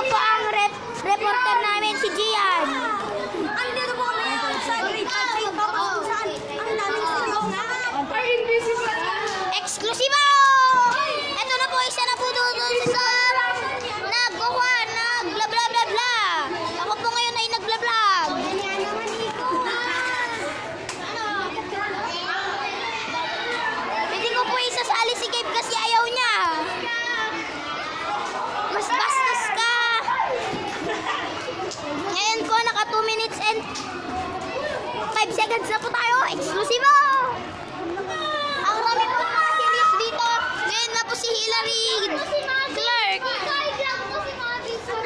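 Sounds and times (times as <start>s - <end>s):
children chattering: 0.0s - 45.0s.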